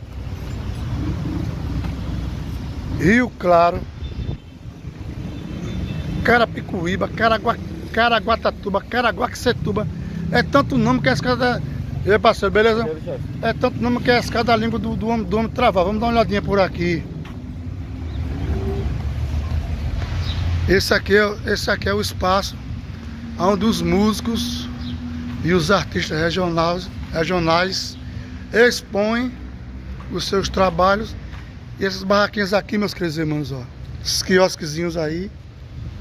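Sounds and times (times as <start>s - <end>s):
vehicle engine rumbling: 0.0s - 36.0s.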